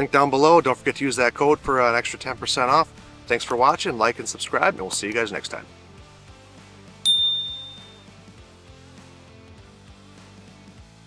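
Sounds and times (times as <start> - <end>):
quiet background music: 0.0 - 6.1
notification bell ding: 7.1 - 8.0.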